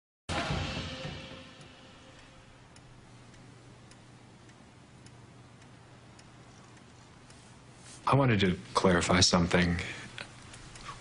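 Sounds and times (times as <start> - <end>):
low steady hum: 0.4 - 11.0
faint clock ticking: 1.6 - 11.0.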